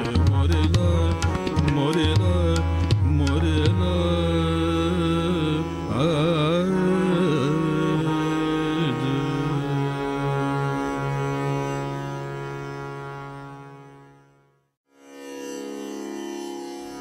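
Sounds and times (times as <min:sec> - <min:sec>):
person singing classical vocal: 0:00.0 - 0:11.3.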